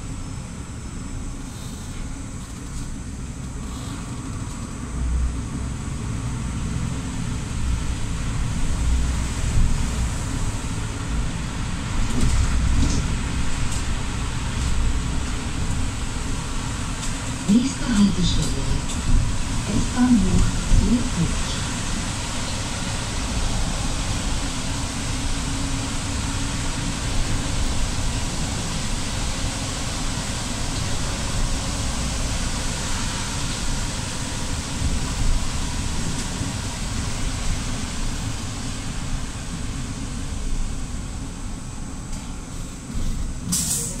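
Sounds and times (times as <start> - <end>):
bus engine rumble: 0.0 - 44.0
tyres hissing on wet road: 0.1 - 44.0.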